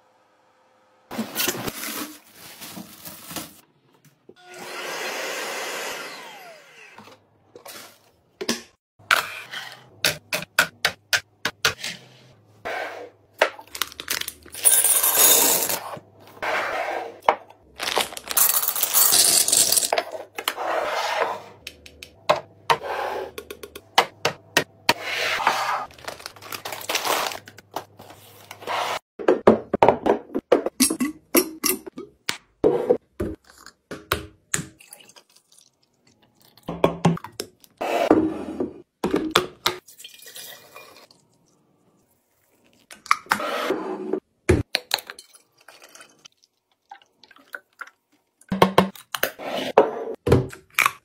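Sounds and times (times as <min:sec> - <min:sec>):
packaging clicks and rustles: 0:17.8 - 0:19.0, 0:25.9 - 0:27.8.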